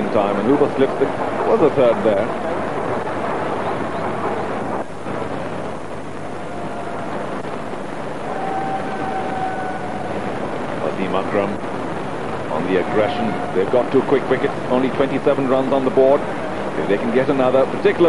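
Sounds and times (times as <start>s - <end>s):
rushing background noise: 0.0s - 18.0s.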